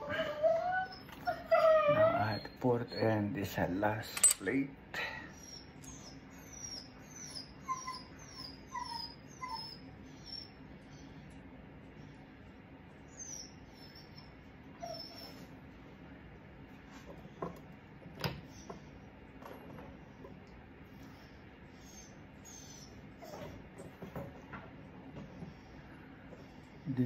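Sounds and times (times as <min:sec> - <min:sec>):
faint steady hum: 0:00.0 - 0:27.0.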